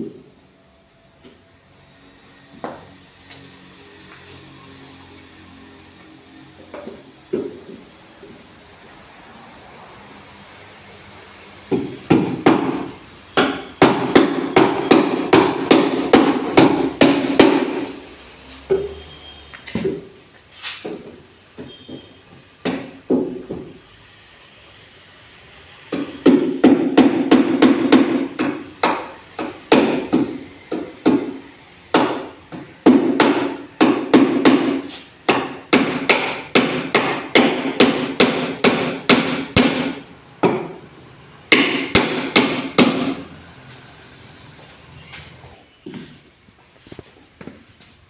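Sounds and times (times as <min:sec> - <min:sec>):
hammer driving nails into wood: 0:11.7 - 0:17.9, 0:25.9 - 0:40.7, 0:41.5 - 0:43.2.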